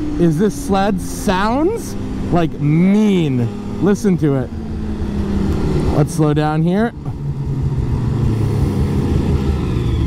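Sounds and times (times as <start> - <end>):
snowmobile engine running: 0.0 - 10.0.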